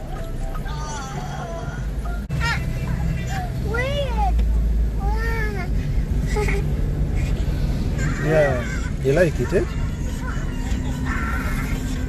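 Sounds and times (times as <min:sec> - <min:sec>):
car driving slowly: 0:00.0 - 0:12.0.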